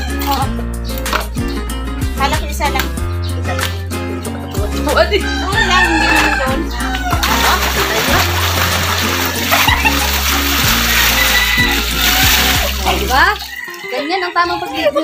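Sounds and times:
background music with steady bass: 0.0s - 15.0s
water pouring and splashing: 6.9s - 15.0s.

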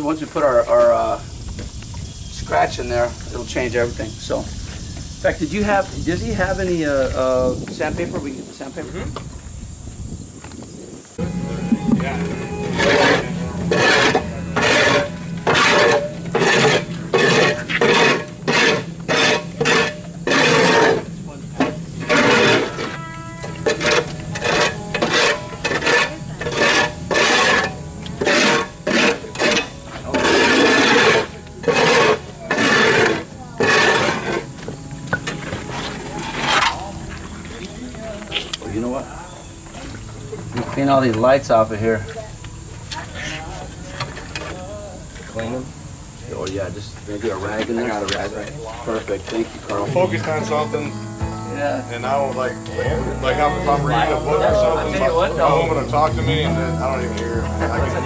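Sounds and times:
music with low note: 11.2s - 44.8s, 49.1s - 58.0s
sandpaper rubbing on concrete: 12.4s - 21.1s, 23.7s - 34.5s.

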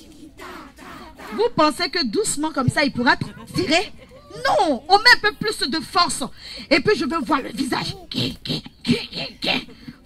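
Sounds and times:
people straining grunts and breaths: 3.2s - 5.2s, 6.3s - 10.0s.

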